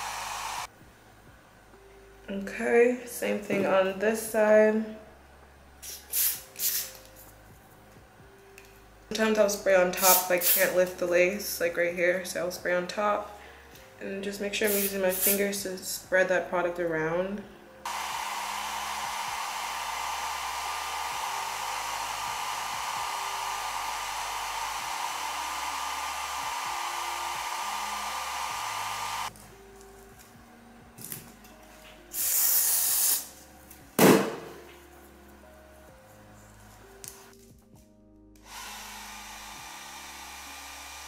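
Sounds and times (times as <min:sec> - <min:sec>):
blow dryer whining: 0:00.0 - 0:00.7, 0:17.9 - 0:29.3, 0:38.4 - 0:41.0
aerosol spray can hissing: 0:05.8 - 0:07.0, 0:10.0 - 0:10.8, 0:14.6 - 0:15.4, 0:32.1 - 0:33.3.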